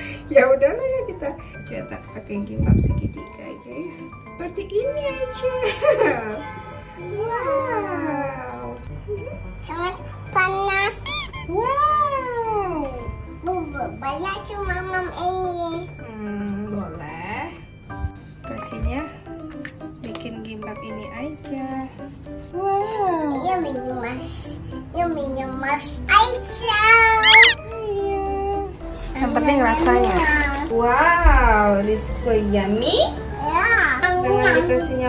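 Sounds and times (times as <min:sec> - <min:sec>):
light background music: 0:00.0 - 0:35.0
toddler squealing: 0:11.0 - 0:11.5, 0:27.0 - 0:27.6
young child's high voice: 0:14.1 - 0:15.9, 0:23.6 - 0:27.6
toddler wordless call: 0:22.5 - 0:28.8.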